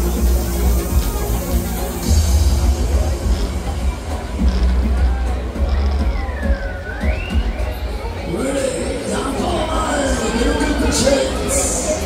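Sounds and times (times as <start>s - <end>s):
music with heavy bass beat: 0.0s - 8.2s.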